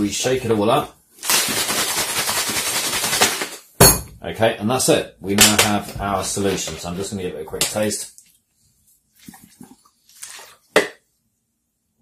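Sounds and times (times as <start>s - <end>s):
water sloshing in shaken bottle: 9.1s - 10.8s.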